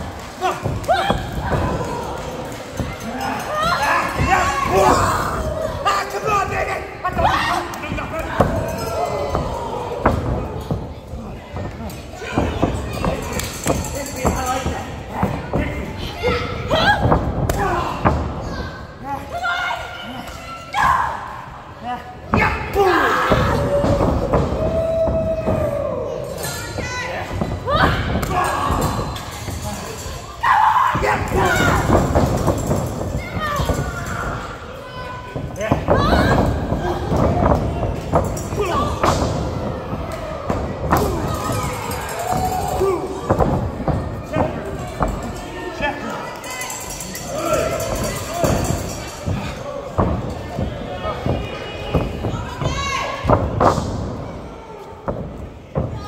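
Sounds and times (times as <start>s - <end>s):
thuds of bodies and blows: 0.0s - 5.8s, 7.1s - 19.0s, 22.3s - 30.2s, 30.8s - 45.5s, 47.4s - 56.0s
people shouting and yelling: 0.0s - 56.0s.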